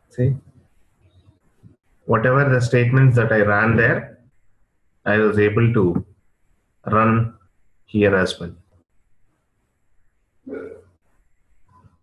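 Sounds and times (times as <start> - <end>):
man's short vocal sound: 10.5 - 10.8.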